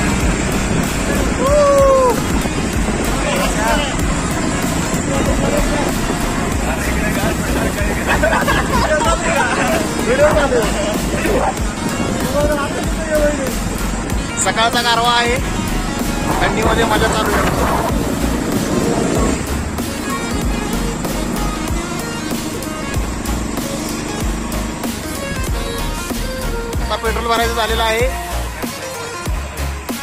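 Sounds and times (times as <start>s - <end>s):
wind rush: 0.0s - 26.8s
motorcycle engine noise: 0.0s - 27.3s
riders calling out and whooping: 1.1s - 4.2s, 6.6s - 13.6s.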